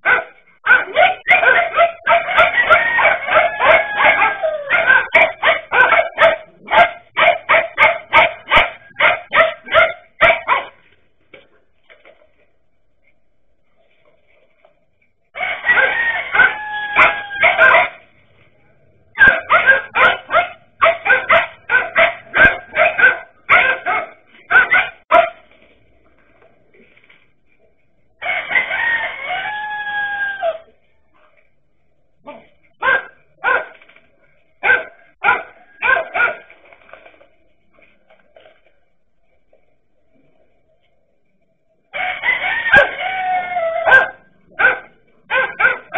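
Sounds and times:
dogs barking: 0.0s - 10.8s, 15.4s - 18.1s, 19.1s - 25.5s, 32.2s - 33.8s, 34.6s - 36.5s, 42.0s - 45.9s
rooster crowing: 1.4s - 5.2s, 15.4s - 17.8s, 28.2s - 30.7s, 41.9s - 44.2s.

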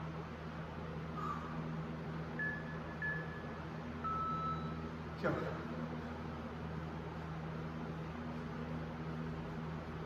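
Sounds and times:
steady low hum: 0.0s - 10.0s
interval timer beeps: 2.4s - 4.9s.

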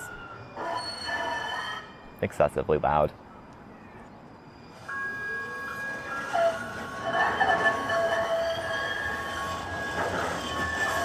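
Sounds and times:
train wheels squealing: 0.0s - 2.2s, 3.3s - 11.0s.

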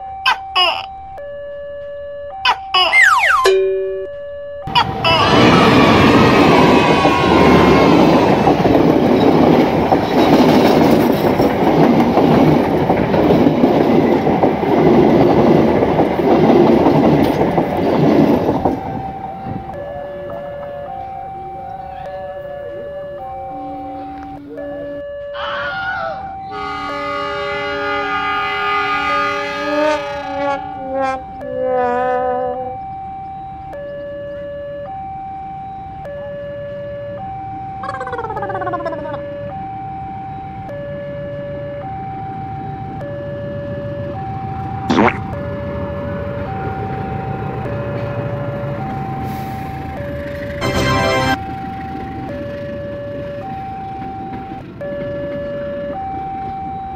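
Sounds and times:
two-tone warning signal: 0.0s - 8.2s, 18.5s - 56.9s
passenger train rumbling past: 4.8s - 24.6s, 26.5s - 32.8s, 45.4s - 56.5s
horn blasts: 26.5s - 32.8s, 50.6s - 51.6s.

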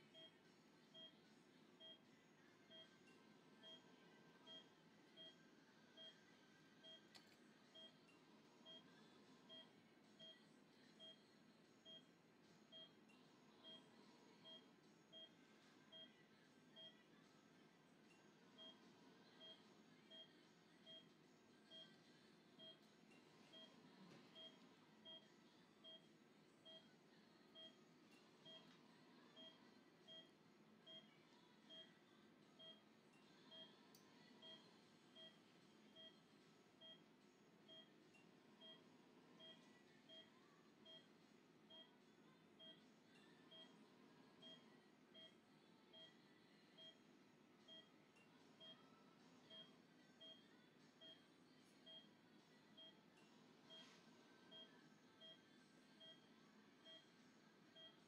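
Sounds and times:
patient monitor beeps: 0.0s - 1.2s, 1.8s - 2.0s, 2.7s - 6.2s, 6.8s - 8.9s, 9.5s - 10.4s, 11.0s - 11.2s, 11.8s - 12.1s, 12.7s - 13.0s, 13.6s - 16.2s, 18.6s - 21.1s, 21.7s - 22.0s, 22.6s - 26.9s, 27.5s - 27.8s, 28.4s - 28.7s, 29.3s - 31.1s, 31.7s - 32.0s, 32.6s - 32.9s, 33.5s - 36.2s, 36.8s - 38.8s, 39.4s - 41.1s, 41.7s - 41.9s, 42.6s - 42.8s, 43.5s - 43.8s, 44.4s - 46.2s, 46.8s - 47.0s, 47.7s - 48.8s, 49.5s - 50.4s, 51.9s - 52.2s, 53.6s - 53.9s, 54.5s - 55.4s, 56.0s - 57.1s, 57.8s - 58.0s
low steady room hum: 0.0s - 58.0s.

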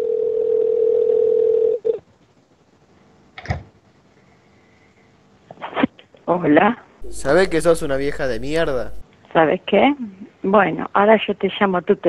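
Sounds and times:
telephone line tone: 0.0s - 2.0s, 7.0s - 9.0s.

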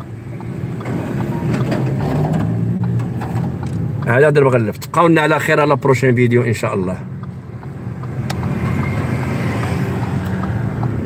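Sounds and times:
car engine hum and road noise: 0.0s - 11.0s.

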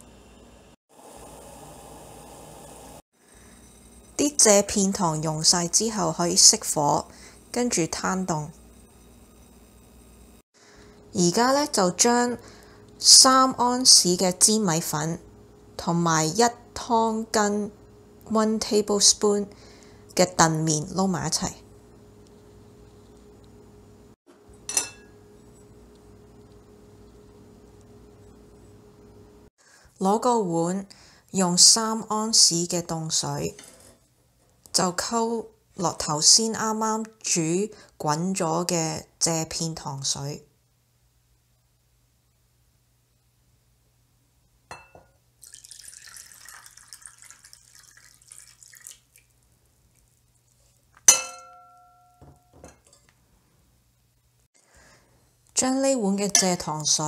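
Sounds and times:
faint room hum: 0.0s - 57.0s
glass bowl clinking on ceramic bowl: 24.6s - 25.2s, 44.7s - 45.8s, 51.1s - 53.1s
syrup pouring into water: 45.4s - 50.4s.

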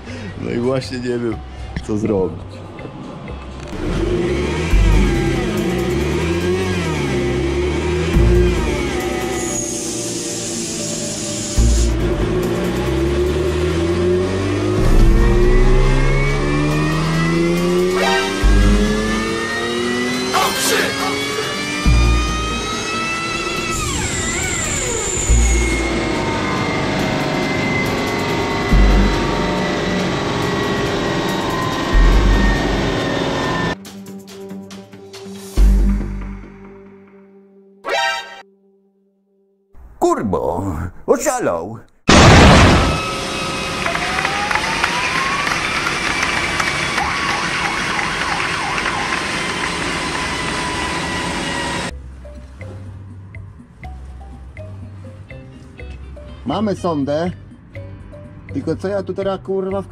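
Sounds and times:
car engine on dynamometer: 3.7s - 33.8s, 42.6s - 51.9s
low thump: 14.8s - 16.0s
heavy low thud: 14.8s - 17.1s
dyno rollers coasting down: 42.5s - 51.9s.

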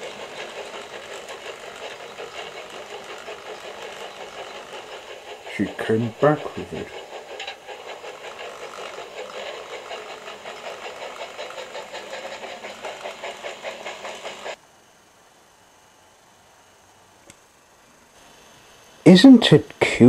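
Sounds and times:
model train motor whirring: 0.0s - 14.6s
small click: 17.2s - 17.4s.

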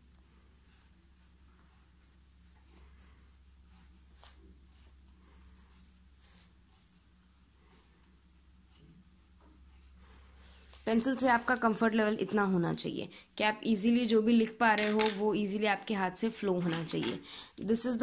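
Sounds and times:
pencil scratching on paper: 0.0s - 12.9s.

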